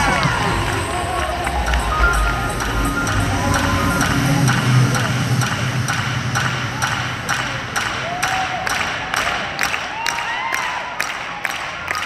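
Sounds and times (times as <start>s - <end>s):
low bass music: 0.0s - 9.5s
audience clapping in rhythm: 0.0s - 12.0s
crowd noise: 0.0s - 12.0s.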